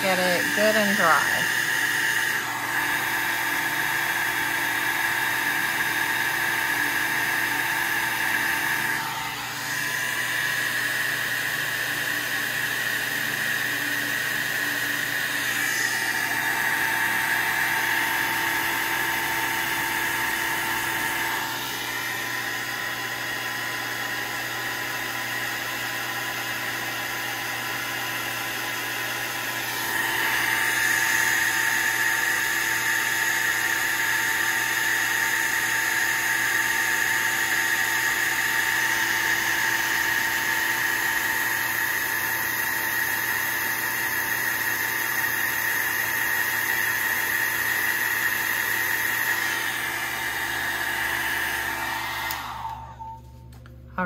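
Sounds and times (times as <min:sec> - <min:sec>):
hair dryer blowing: 0:00.0 - 0:54.0.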